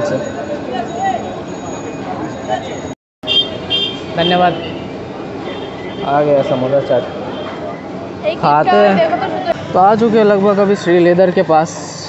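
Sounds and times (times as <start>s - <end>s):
chatter: 0.0s - 3.0s, 4.2s - 12.0s
traffic: 0.0s - 12.0s.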